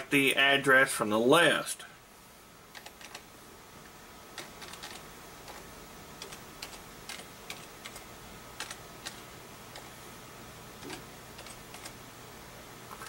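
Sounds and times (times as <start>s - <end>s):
faint steady hum: 0.0s - 13.0s
keyboard keystrokes clicking: 4.4s - 5.6s, 6.2s - 9.9s.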